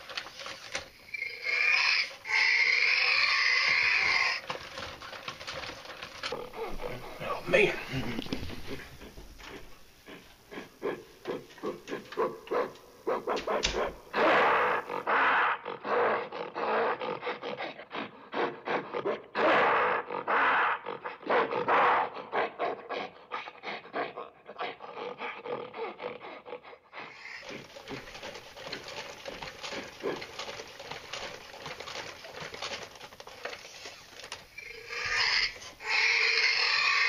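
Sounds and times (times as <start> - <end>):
animal-like growling and roaring: 34.6 - 37.0.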